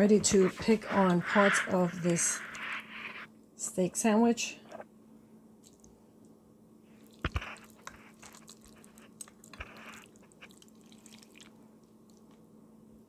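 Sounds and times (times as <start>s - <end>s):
wet squishing meat: 5.6s - 6.0s, 6.9s - 12.4s.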